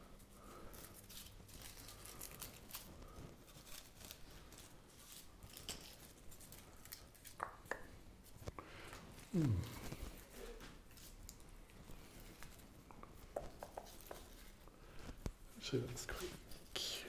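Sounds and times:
hands rustling and clicking: 0.6s - 15.4s.

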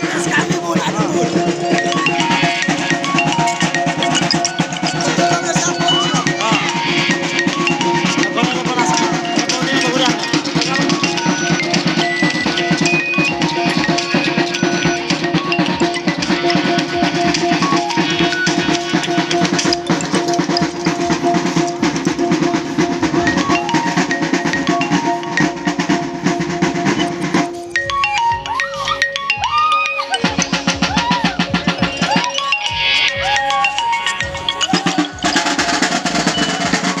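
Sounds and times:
fast drum beats: 0.0s - 37.0s.

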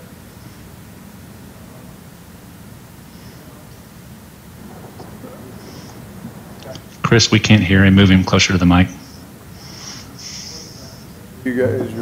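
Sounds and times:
low rumble and hiss: 0.0s - 12.0s
faint muffled man's voice: 3.0s - 9.3s, 10.0s - 12.0s.

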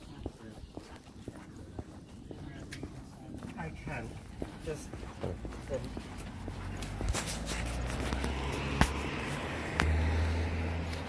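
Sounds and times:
footsteps on concrete: 0.0s - 11.0s.

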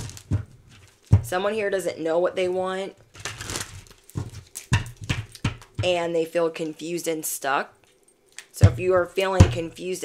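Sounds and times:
cards being shuffled: 3.1s - 4.7s.

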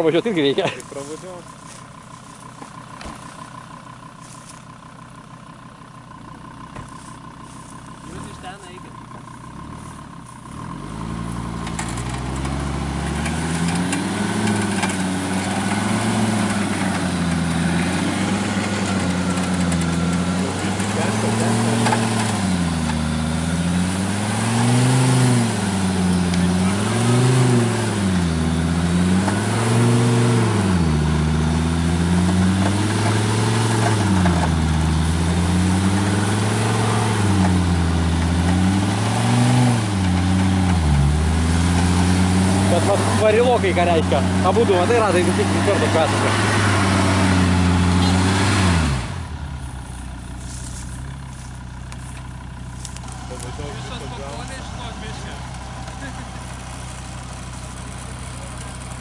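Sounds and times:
suv engine revving under load: 0.6s - 59.0s.

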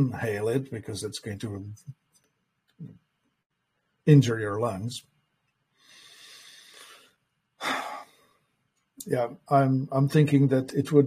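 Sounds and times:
man sighing: 7.6s - 8.2s.

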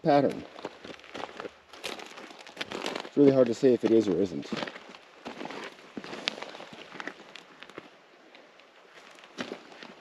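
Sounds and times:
boots crunching on gravel: 0.0s - 10.0s.

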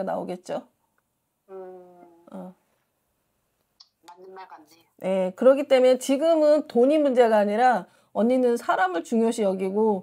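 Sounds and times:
woman speaking softly: 1.5s - 2.6s.

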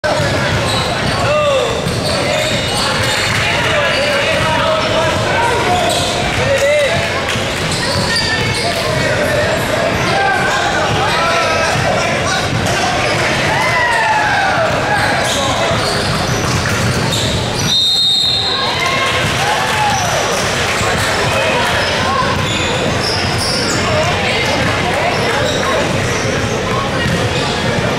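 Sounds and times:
sneaker squeaks: 0.0s - 6.4s, 7.4s - 13.7s, 14.6s - 19.0s, 19.9s - 27.9s
chatter of many voices: 0.0s - 27.9s
basketballs bouncing on hardwood: 0.2s - 3.5s, 26.9s - 27.9s.

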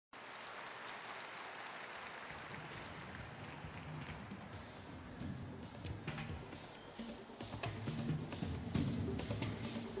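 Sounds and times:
audience applause: 0.2s - 4.4s.

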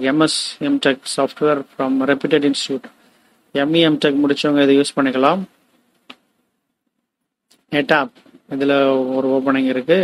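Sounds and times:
man narrating: 0.0s - 5.6s, 7.6s - 10.0s.

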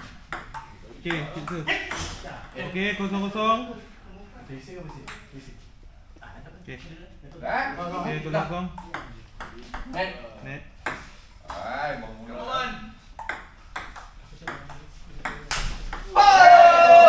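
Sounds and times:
table tennis ball clicking: 13.2s - 16.1s.

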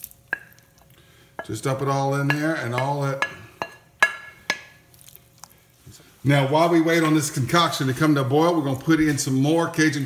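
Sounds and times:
metal spatula knocking: 1.4s - 4.8s.

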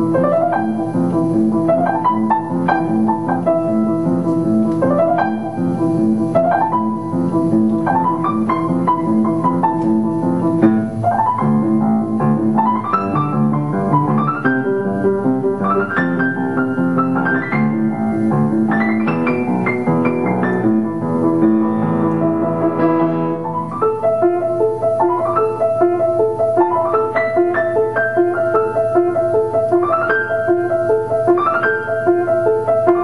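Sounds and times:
solo piano playing: 0.0s - 33.0s.

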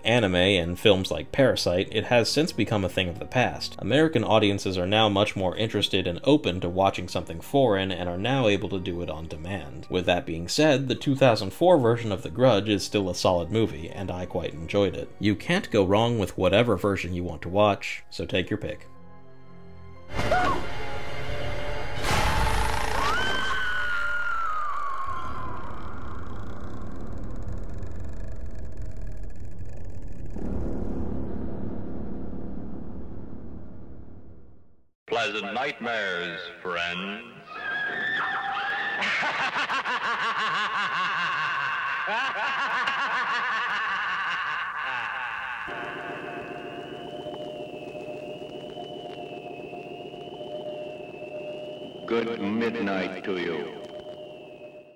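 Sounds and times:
eerie electronic drone: 21.7s - 34.5s, 39.3s - 54.9s
low rumbling drone: 25.0s - 34.8s
high wailing tone: 45.7s - 54.9s.

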